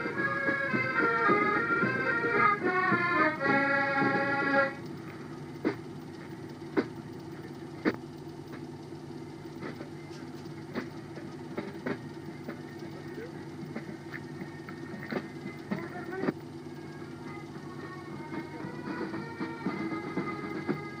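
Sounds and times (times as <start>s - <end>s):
low mechanical hum: 0.0s - 21.0s
sharp clicks and knocks: 4.8s - 8.9s.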